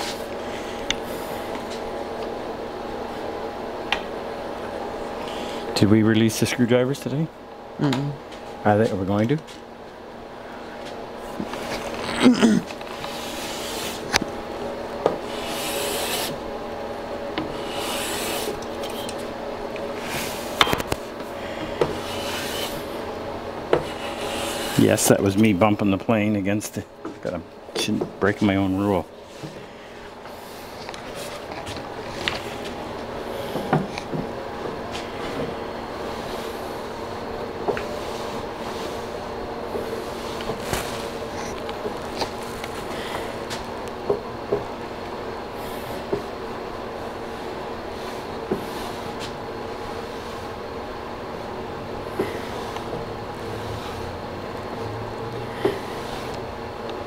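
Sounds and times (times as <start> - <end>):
wood rubbing on wood: 11.4 - 14.3, 15.0 - 16.4, 17.4 - 19.2, 21.4 - 23.0, 23.6 - 25.4.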